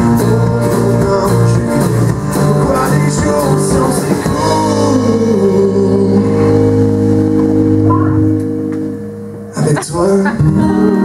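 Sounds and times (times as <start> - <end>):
live band holding a chord: 0.0 - 11.0.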